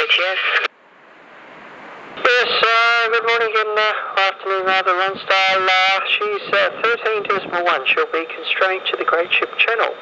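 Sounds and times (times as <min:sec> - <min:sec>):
man's voice over radio: 0:00.0 - 0:00.7, 0:02.2 - 0:10.0
radio hissing: 0:03.7 - 0:10.0.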